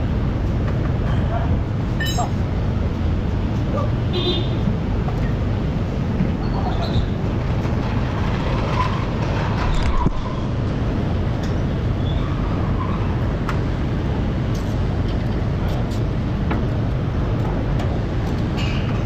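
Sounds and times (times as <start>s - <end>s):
workshop background rumble: 0.0s - 19.0s.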